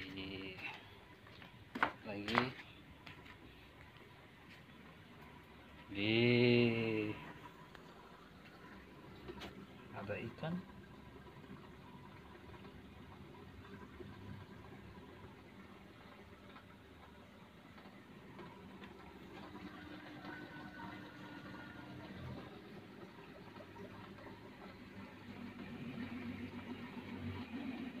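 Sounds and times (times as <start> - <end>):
water splashing into aquarium: 0.0 - 28.0.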